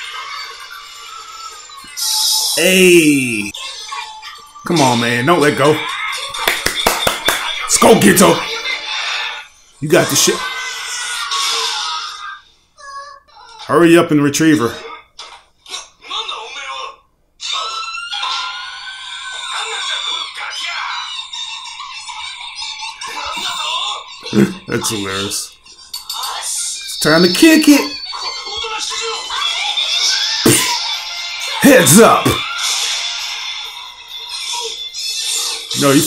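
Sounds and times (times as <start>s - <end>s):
cartoon dialogue: 2.0s - 3.7s, 23.1s - 25.4s, 26.5s - 29.6s, 31.6s - 32.5s
man screaming: 31.6s - 32.4s.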